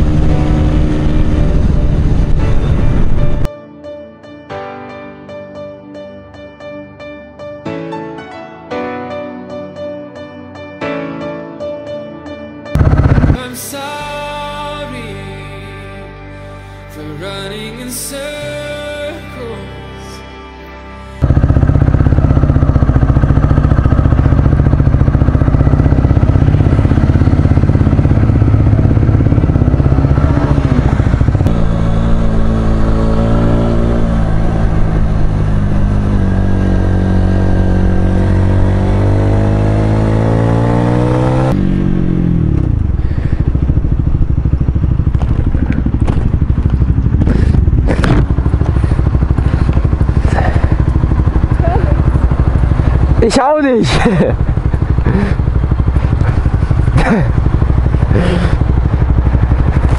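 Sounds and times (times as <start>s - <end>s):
motorcycle engine revving: 0.0s - 3.5s, 12.8s - 14.4s, 21.2s - 59.9s.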